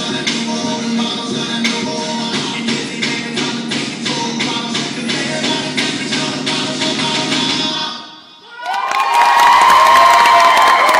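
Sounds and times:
music: 0.0 - 8.5
audience cheering and screaming: 8.6 - 10.9
audience clapping: 8.6 - 10.9.

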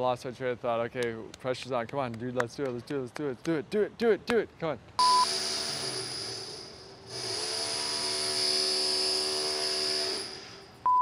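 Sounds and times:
short high beep: 5.0 - 5.3
drill whining: 5.0 - 10.7.

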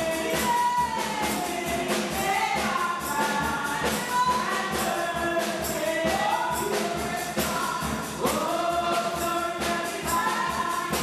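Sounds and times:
percussion beat: 0.0 - 11.0.

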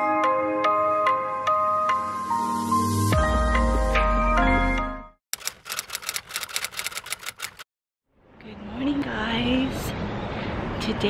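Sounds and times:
typewriter key clicks: 5.4 - 7.6.

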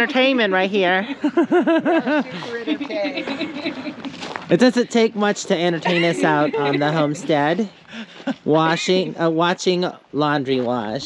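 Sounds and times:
talking voices: 0.0 - 11.0.

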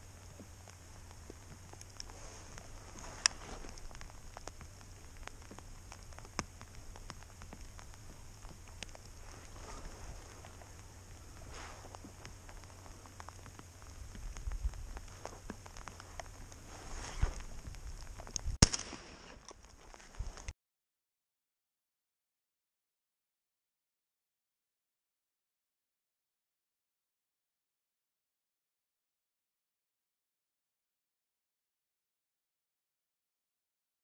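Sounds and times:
low steady rumble: 0.0 - 20.5
raindrops ticking on camera: 0.0 - 20.5
shotgun shot: 18.6 - 19.3.

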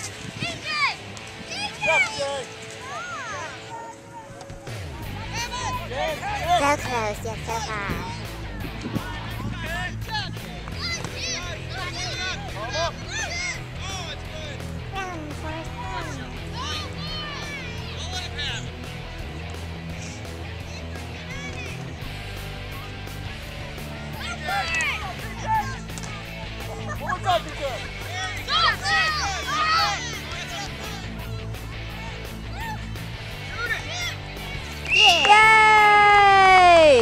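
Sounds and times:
people calling and shouting: 0.0 - 37.0
music with stepping bass line: 4.7 - 10.8.

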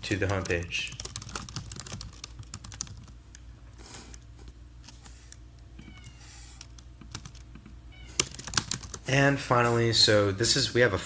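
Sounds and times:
keyboard keys clicking: 0.0 - 3.1, 6.6 - 9.0.

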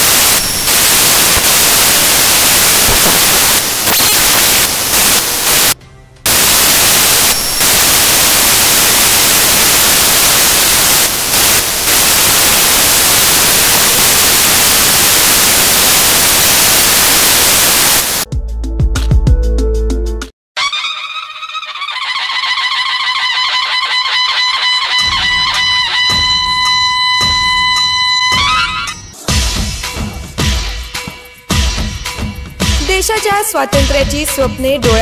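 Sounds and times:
loud static hiss: 0.0 - 18.3.

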